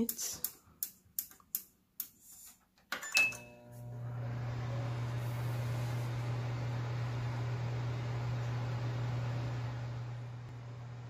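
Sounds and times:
microwave oven humming: 3.2 - 11.0.

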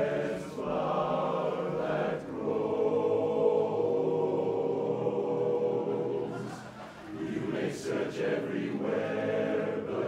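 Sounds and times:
male chorus singing a cappella: 0.0 - 10.0.

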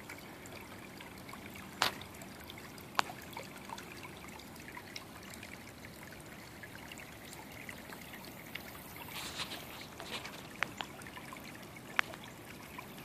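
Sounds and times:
small drips and ticks: 0.0 - 13.0
stream water trickling: 0.0 - 13.0.

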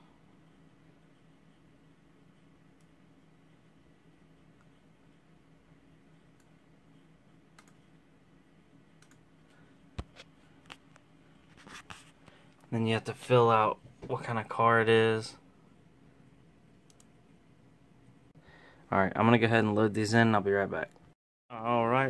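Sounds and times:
faint steady hum: 0.0 - 22.0
computer mouse clicks: 7.5 - 7.8, 9.0 - 9.2, 16.8 - 17.1.

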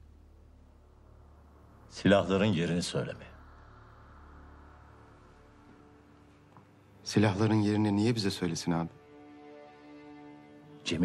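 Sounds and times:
faint sustained music tone: 0.0 - 11.0.

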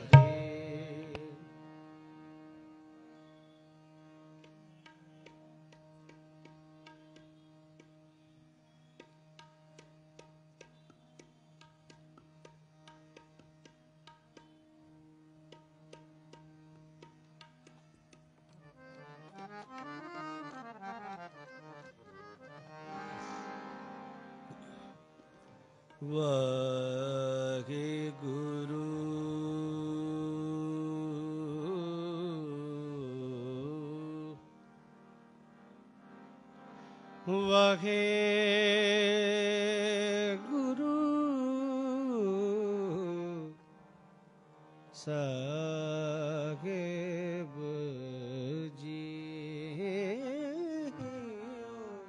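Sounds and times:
man singing held notes: 0.0 - 1.5
harmonium: 0.0 - 52.0.

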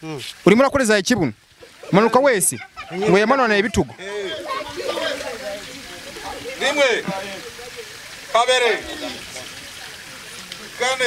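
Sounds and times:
person calling out wordlessly: 1.7 - 5.5.

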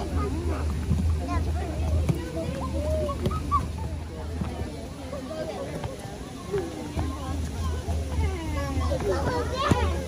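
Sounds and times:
children chattering and calling out: 0.0 - 10.0.

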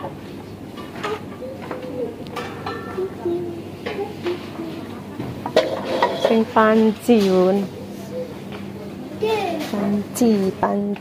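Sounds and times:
indistinct voices talking: 1.2 - 11.0
metal pots and pans clinking: 2.4 - 3.1, 5.5 - 6.5.

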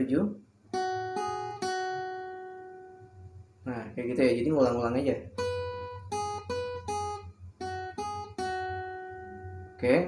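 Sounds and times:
acoustic guitar note ringing: 0.7 - 10.0.

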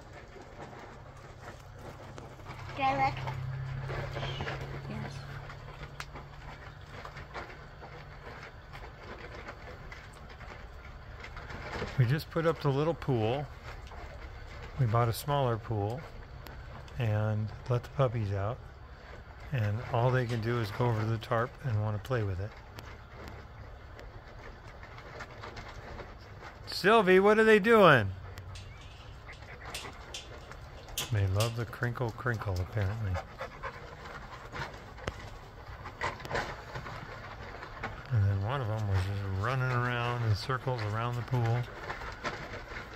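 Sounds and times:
outdoor background hiss: 0.0 - 42.9
plastic tarp crinkling: 0.0 - 42.9.

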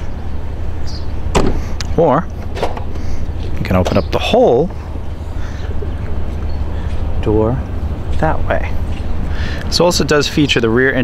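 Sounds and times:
steady low rumble: 0.0 - 11.0
tailgate glass thump: 1.3 - 1.6
latch click: 2.4 - 3.0.

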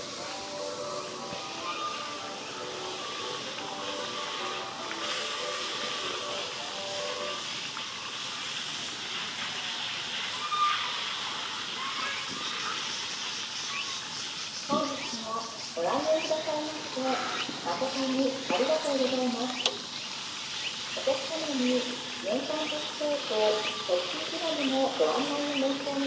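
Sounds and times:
steady high hiss: 0.0 - 26.0.

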